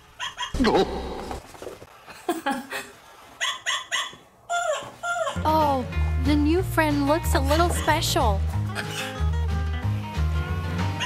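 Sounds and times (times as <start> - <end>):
toy dog yapping: 3.4 - 5.4.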